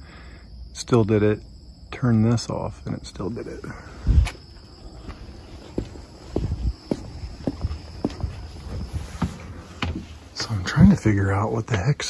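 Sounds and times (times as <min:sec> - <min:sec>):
footsteps on floor: 0:04.9 - 0:10.4.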